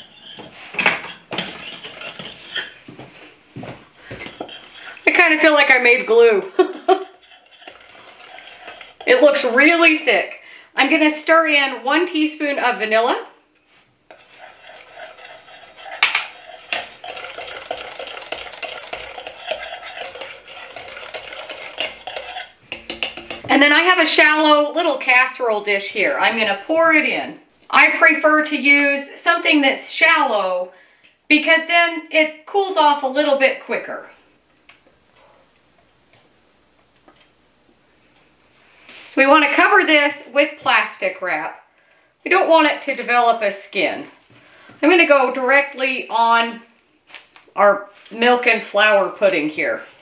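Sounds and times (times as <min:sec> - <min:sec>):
wire whisk scraping a saucepan: 0:00.0 - 0:02.8, 0:04.1 - 0:09.7, 0:14.1 - 0:23.4.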